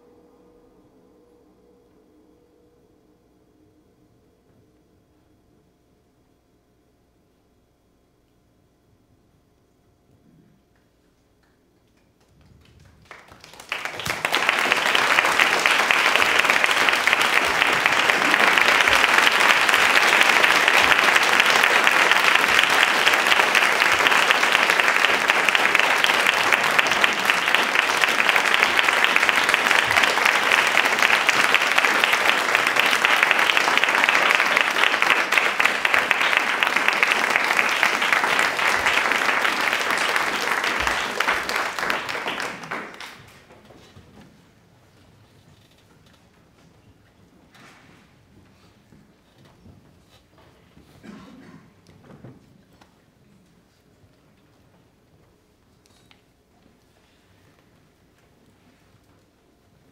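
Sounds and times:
audience applauding: 0:11.9 - 0:43.6.

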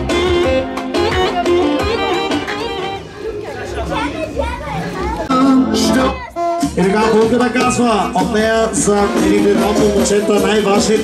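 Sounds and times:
live music: 0:00.0 - 0:03.6, 0:04.8 - 0:11.0
children's voices: 0:01.2 - 0:06.9
people talking: 0:01.2 - 0:11.0.

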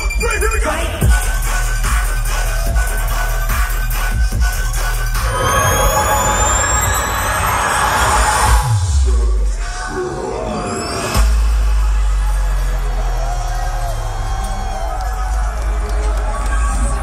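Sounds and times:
dubstep over sound system: 0:00.0 - 0:12.9
rising synth sweeps: 0:05.1 - 0:11.3.

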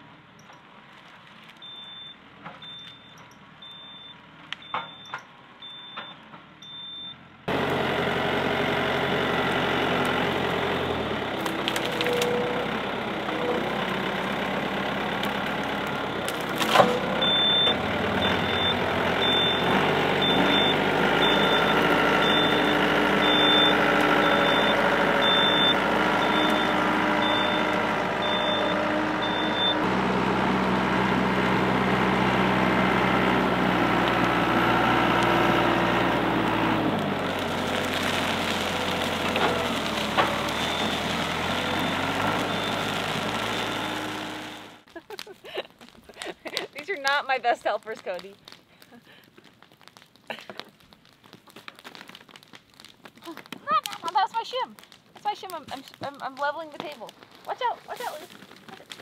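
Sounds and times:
tractor diesel engine working: 0:00.0 - 0:44.9
reversing alarm beeping: 0:01.6 - 0:07.2, 0:17.2 - 0:29.8, 0:40.5 - 0:44.7.

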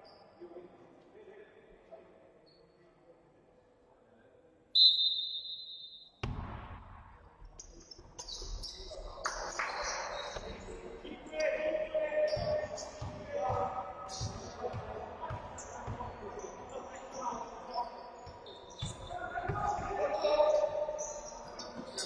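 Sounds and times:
referee's whistle blast: 0:04.8 - 0:06.2
basketball bouncing on court: 0:06.2 - 0:07.2, 0:12.3 - 0:16.2, 0:18.2 - 0:20.0
players' voices: 0:06.2 - 0:22.0.

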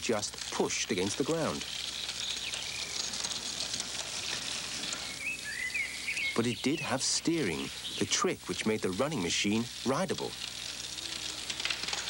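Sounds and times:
steady background hiss: 0:00.0 - 0:12.0
bird chirps: 0:01.6 - 0:03.5, 0:04.8 - 0:08.2.

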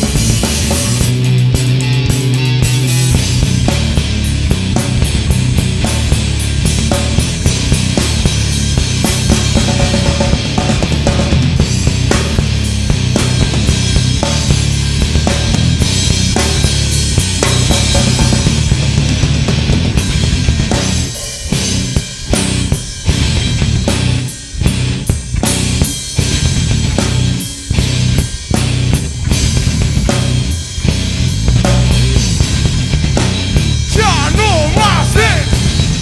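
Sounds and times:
bass guitar: 0:00.0 - 0:36.0
drum kit: 0:00.0 - 0:36.0
electric guitar: 0:00.0 - 0:36.0.

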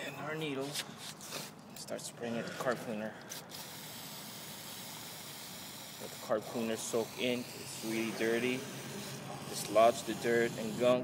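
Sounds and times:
aerosol can spraying: 0:03.5 - 0:10.8.

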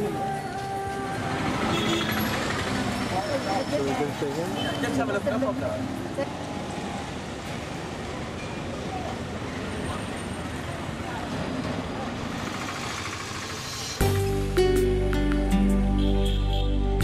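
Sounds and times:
street traffic: 0:00.0 - 0:17.0.

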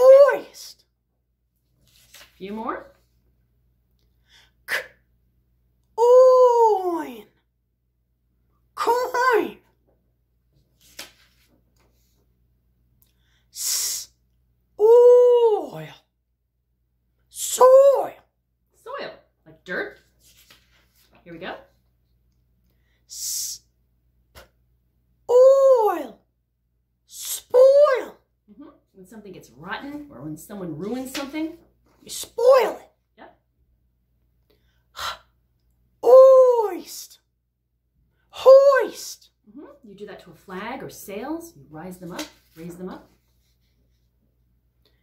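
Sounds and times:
high-pitched voice sounding out: 0:00.0 - 0:00.7, 0:06.0 - 0:07.3, 0:14.8 - 0:16.0, 0:17.4 - 0:18.2, 0:25.3 - 0:26.2, 0:27.2 - 0:28.2, 0:32.1 - 0:32.9, 0:36.0 - 0:37.1, 0:38.4 - 0:39.7
woman sounding out a word: 0:06.0 - 0:07.3, 0:08.8 - 0:09.7, 0:14.8 - 0:16.0, 0:25.3 - 0:26.2.

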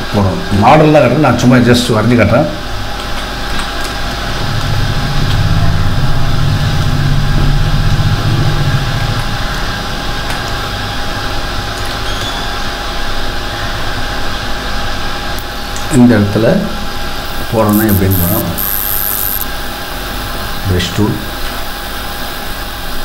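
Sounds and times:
background hiss and hum: 0:00.0 - 0:23.0
low motor-like drone: 0:03.8 - 0:11.6, 0:17.2 - 0:23.0.

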